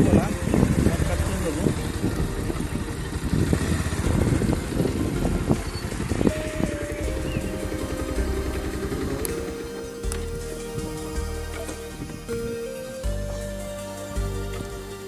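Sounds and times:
wind rumble on microphone: 0.0 - 9.6
background music with held notes: 0.0 - 15.0
motorcycle riding: 0.0 - 15.0.

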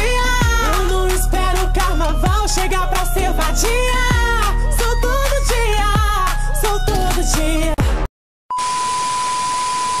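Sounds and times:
music: 0.0 - 8.1.

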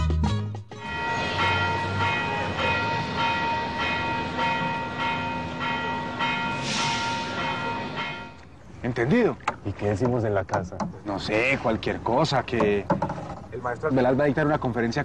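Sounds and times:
bell ringing: 0.7 - 8.5.

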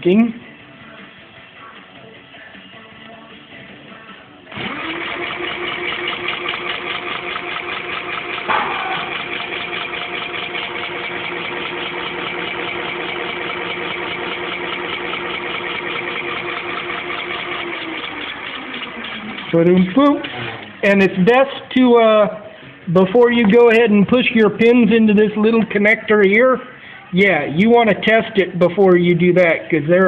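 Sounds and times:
electric hub motor whining: 4.5 - 20.8.

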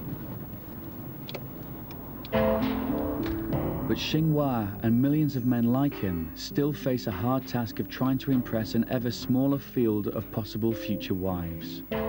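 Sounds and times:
car interior rumble: 0.0 - 12.0
music with sustained notes: 2.2 - 12.0.

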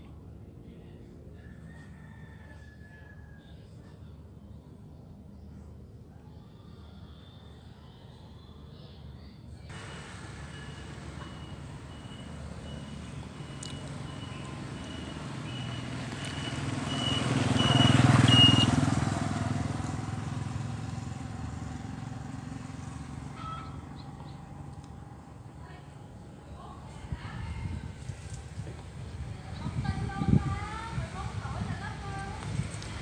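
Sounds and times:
motor vehicle passing by: 9.7 - 33.0.

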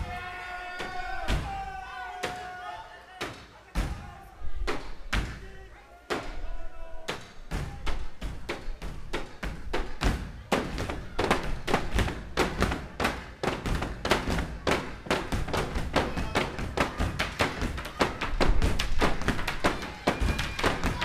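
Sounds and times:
stomps and cane strikes on stage: 7.1 - 21.0.

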